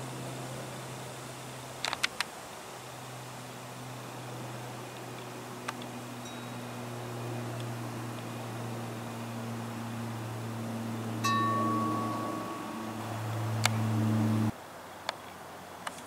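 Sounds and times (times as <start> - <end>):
low propeller drone overhead: 0.0 - 14.6
wind chime ringing: 6.2 - 6.9, 10.7 - 14.5.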